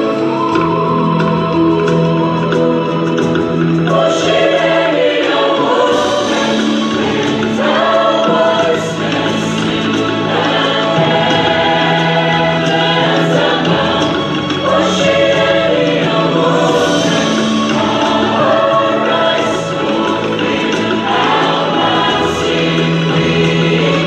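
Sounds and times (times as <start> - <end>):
women's choir singing: 0.0 - 24.0.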